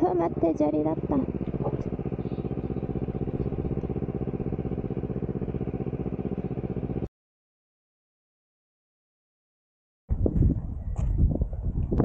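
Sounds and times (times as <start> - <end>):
motorcycle engine at low revs: 0.0 - 7.1.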